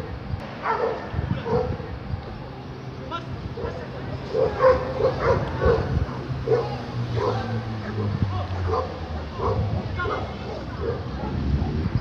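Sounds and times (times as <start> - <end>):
dogs barking: 0.6 - 1.8, 3.6 - 11.8.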